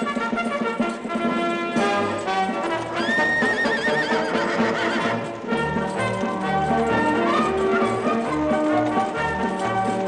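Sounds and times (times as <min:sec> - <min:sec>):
brass band march: 0:00.0 - 0:10.0
horse whinnying: 0:02.0 - 0:10.0.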